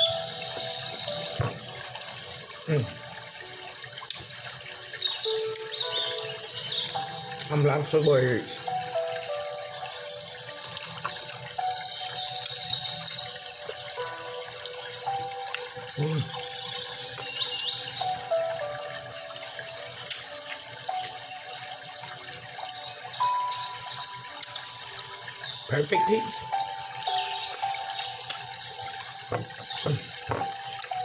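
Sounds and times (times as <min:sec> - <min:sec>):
soft background music: 0:00.0 - 0:31.0
bird-like chirps: 0:04.1 - 0:31.0.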